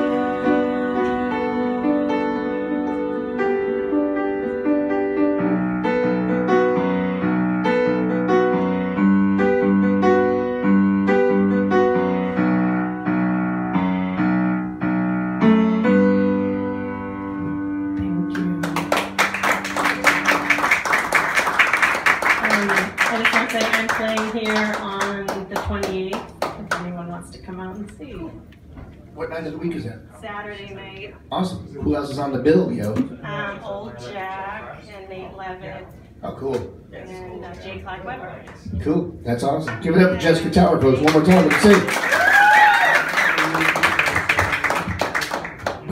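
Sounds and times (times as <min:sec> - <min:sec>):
piano chords: 0:00.0 - 0:27.5
audience applauding: 0:18.3 - 0:26.9, 0:40.9 - 0:45.9.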